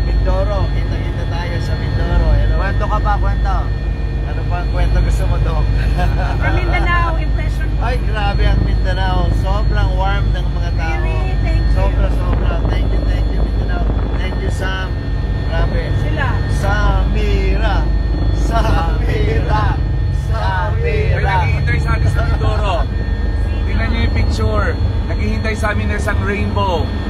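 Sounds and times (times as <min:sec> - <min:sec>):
helicopter engine and rotor drone: 0:00.0 - 0:27.0
whining tones: 0:00.0 - 0:27.0.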